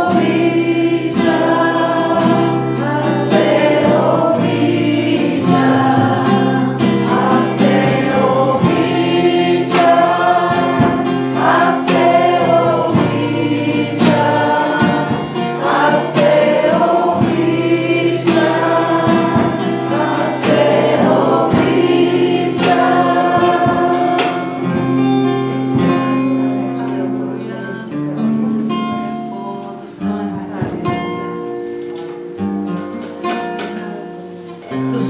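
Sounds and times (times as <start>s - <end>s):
drums: 0.0s - 26.4s
acoustic guitar strumming: 0.0s - 35.0s
congregation singing: 0.0s - 35.0s
woman singing into a microphone: 29.7s - 31.1s.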